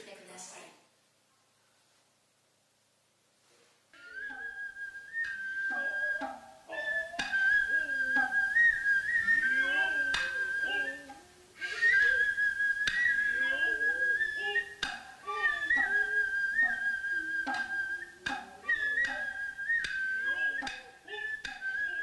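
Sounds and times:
drummers' drawn-out vocal calls: 0:04.0 - 0:22.0
flute long high notes: 0:04.0 - 0:22.0
hand drum strikes: 0:14.8 - 0:16.0, 0:17.4 - 0:19.2.

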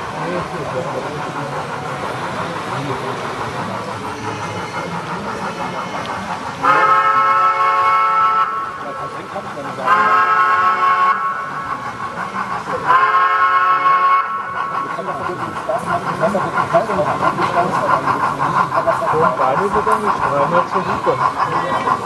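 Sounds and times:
model steam locomotive whistle: 0:06.6 - 0:08.8, 0:09.9 - 0:11.6, 0:12.9 - 0:14.6.

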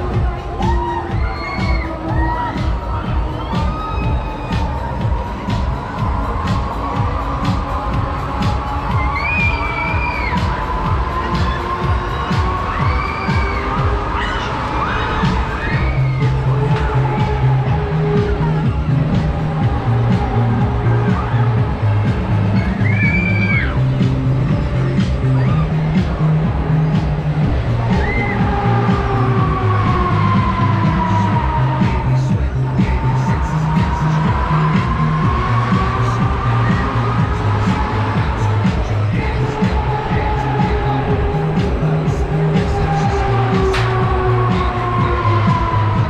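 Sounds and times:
fairground dance music: 0:00.0 - 0:46.0
riders screaming: 0:08.9 - 0:17.0, 0:22.5 - 0:23.8.

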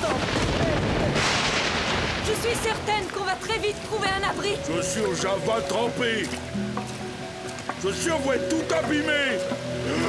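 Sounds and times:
thunder crack: 0:00.0 - 0:04.7
heavy rain: 0:00.0 - 0:10.0.

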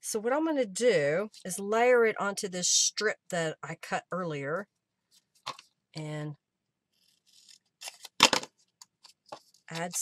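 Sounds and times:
paper rustling: 0:05.1 - 0:05.7, 0:07.0 - 0:10.0.

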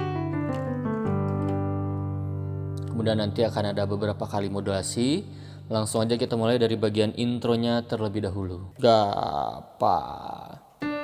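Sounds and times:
piano chords: 0:00.0 - 0:07.6, 0:10.8 - 0:11.0.

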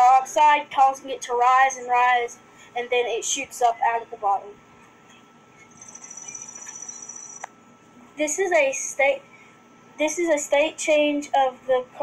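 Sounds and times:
insect trill: 0:05.7 - 0:07.5.

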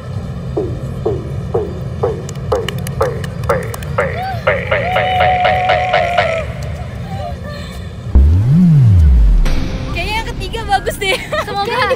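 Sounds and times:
young women laughing: 0:06.2 - 0:08.1, 0:10.9 - 0:11.9.

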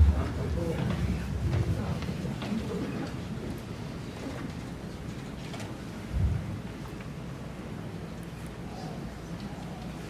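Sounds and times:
faint room murmur: 0:00.0 - 0:10.0.

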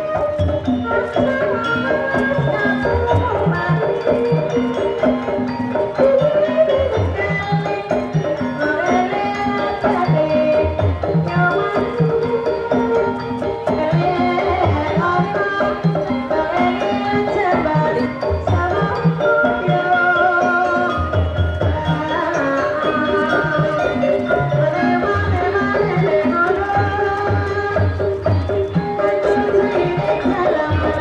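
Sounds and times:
metallic gamelan tones: 0:00.0 - 0:31.0
pitched percussion pattern: 0:00.0 - 0:31.0.

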